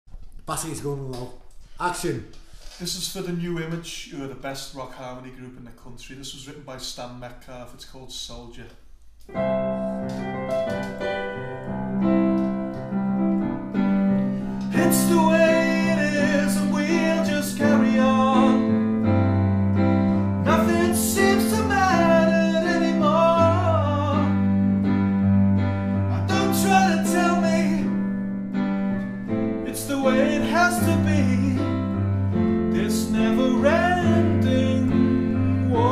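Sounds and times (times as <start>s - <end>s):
piano chords on keyboard: 9.3s - 35.9s
person singing: 14.4s - 19.2s, 20.3s - 24.6s, 26.0s - 28.0s, 29.6s - 31.9s, 32.7s - 35.9s.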